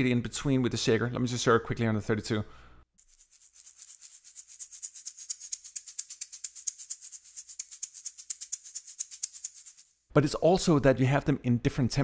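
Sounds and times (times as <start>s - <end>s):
shaker playing fast groove: 3.0s - 10.0s.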